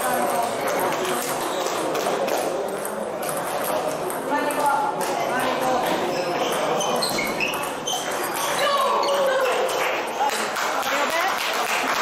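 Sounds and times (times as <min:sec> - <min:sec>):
table tennis ball on paddles: 0:00.0 - 0:11.2
voices in a large hall: 0:00.0 - 0:12.0.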